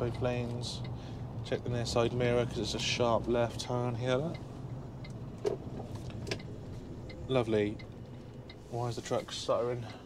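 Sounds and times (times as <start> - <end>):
diesel engine running: 0.0 - 10.0.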